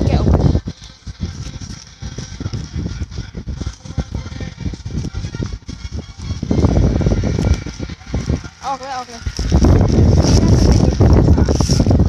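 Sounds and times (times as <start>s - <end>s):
plastic and paper envelopes crinkling: 7.3s - 12.0s.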